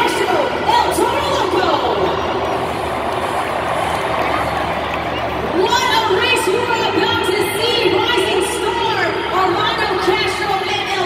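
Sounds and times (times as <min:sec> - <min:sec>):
monster truck engines running: 0:00.0 - 0:11.0.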